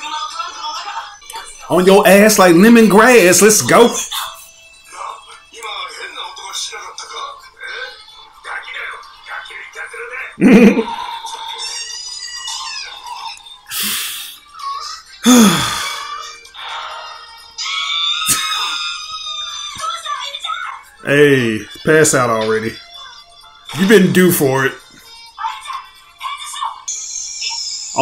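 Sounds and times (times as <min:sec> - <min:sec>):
background music: 0:00.0 - 0:28.0
dialogue: 0:00.0 - 0:28.0
man laughing loudly: 0:10.4 - 0:11.1, 0:18.3 - 0:18.8.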